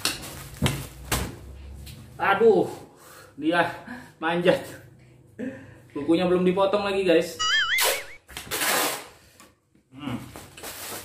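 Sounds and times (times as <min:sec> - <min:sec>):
packing tape pulled off roll: 0:08.3 - 0:09.2, 0:10.5 - 0:11.0.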